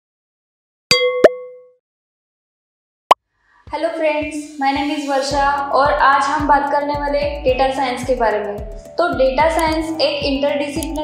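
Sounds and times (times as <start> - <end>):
short ringing tone: 0.9 - 1.8.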